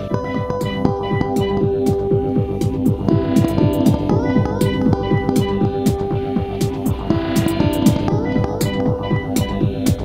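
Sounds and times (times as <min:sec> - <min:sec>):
held synth tone: 0:00.0 - 0:10.0
repeating synth bass note: 0:00.0 - 0:10.0.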